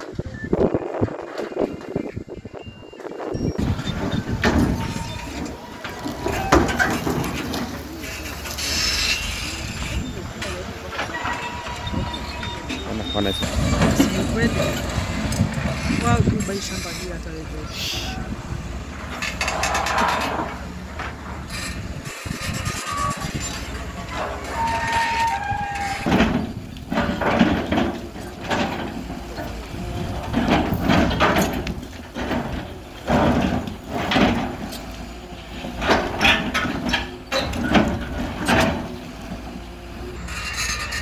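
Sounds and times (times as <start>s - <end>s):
excavator engine rumble: 0.0s - 41.0s.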